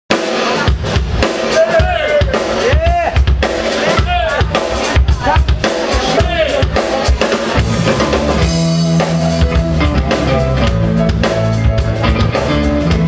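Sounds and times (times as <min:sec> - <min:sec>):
drum kit kick and snare: 0:00.1 - 0:13.0
electric guitar lead with bends: 0:06.6 - 0:13.0.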